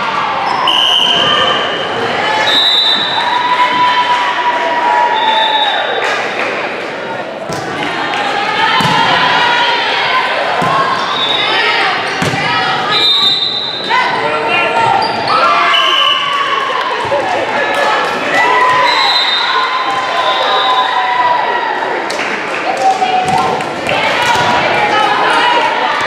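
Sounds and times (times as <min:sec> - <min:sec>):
people calling and shouting: 0:06.6 - 0:26.0
volleyball being hit: 0:08.8 - 0:09.2.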